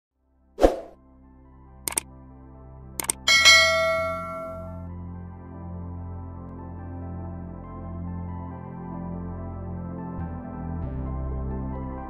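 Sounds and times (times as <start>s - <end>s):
soft steady music tone: 1.0s - 12.0s
quick clicks: 3.0s - 3.2s.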